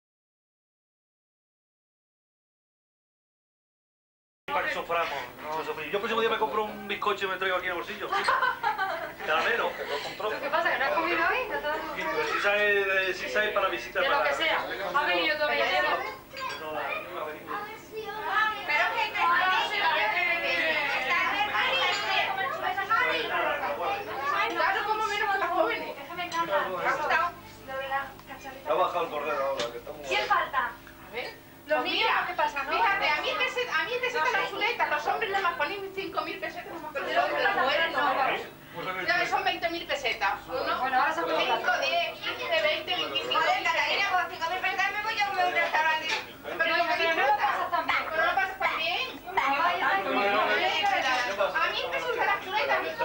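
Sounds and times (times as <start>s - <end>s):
people chattering: 4.5s - 53.0s
people talking at once: 4.5s - 53.0s.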